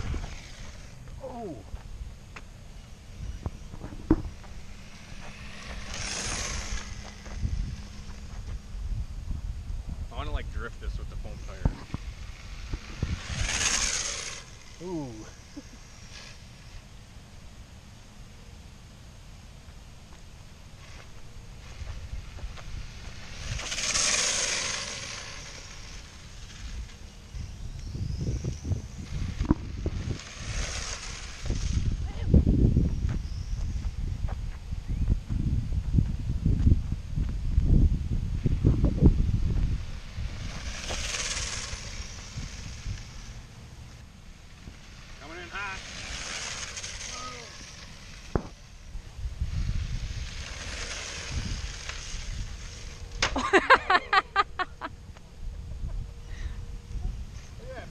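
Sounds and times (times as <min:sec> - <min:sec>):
wind on microphone: 0:00.0 - 0:16.3, 0:21.6 - 0:43.5, 0:44.6 - 0:53.2
rc car road rumble: 0:00.0 - 0:57.9.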